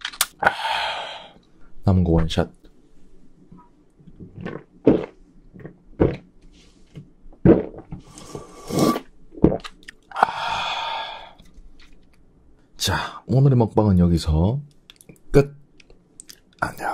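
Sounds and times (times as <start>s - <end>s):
person gulping beer: 4.1s - 6.3s, 7.4s - 11.4s
long breathy exhale: 10.2s - 11.4s.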